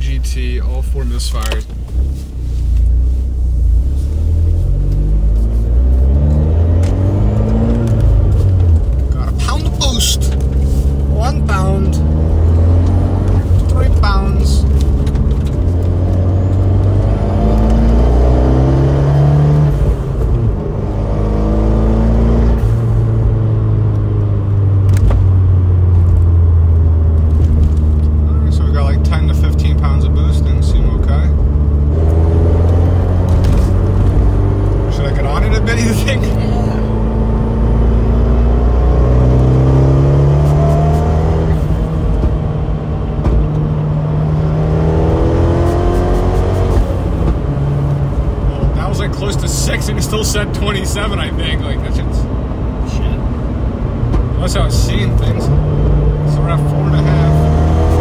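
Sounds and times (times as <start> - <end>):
turbocharged car engine revving: 2.9 - 58.0.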